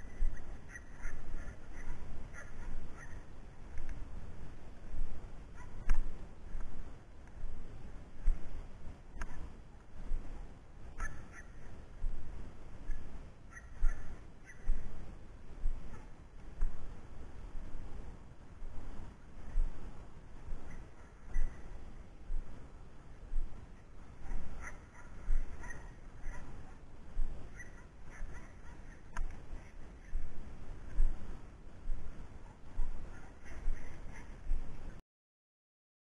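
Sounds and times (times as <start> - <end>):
short bird calls: 0.0 - 3.4, 11.0 - 11.8, 12.9 - 14.9, 24.6 - 26.8, 27.5 - 30.3
wind on microphone: 0.0 - 35.0.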